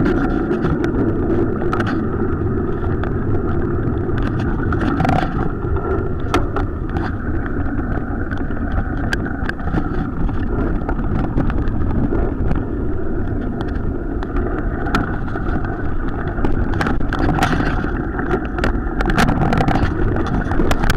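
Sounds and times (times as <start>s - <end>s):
bicycle tyres rumbling on gravel: 0.0s - 20.9s
wind on microphone: 0.0s - 20.9s
bike clicks and rattles: 16.5s - 20.9s.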